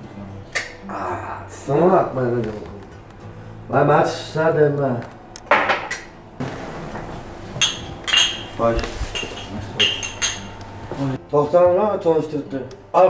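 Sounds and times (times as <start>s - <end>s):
drinking glasses clinking: 5.5s - 6.1s, 7.0s - 11.0s.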